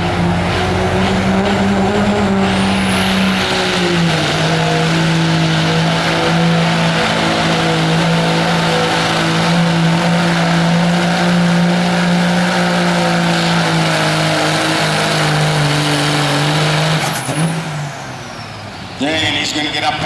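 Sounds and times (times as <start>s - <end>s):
diesel engine revving under load: 0.0s - 19.2s.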